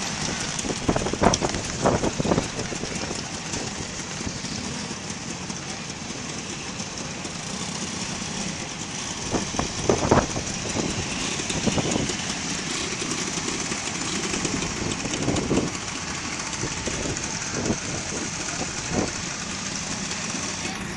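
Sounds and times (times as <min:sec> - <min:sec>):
scooters and motorcycles riding past: 0:00.0 - 0:20.9.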